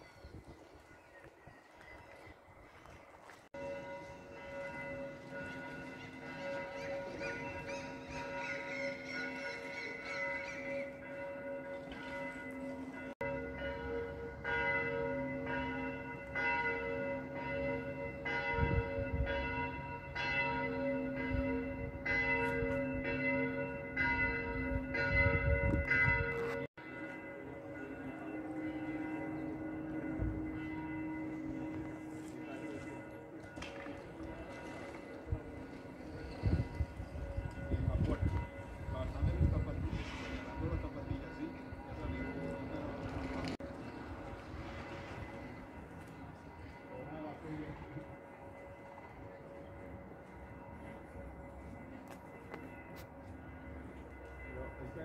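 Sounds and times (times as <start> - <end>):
church bells ringing: 0.0 - 55.0.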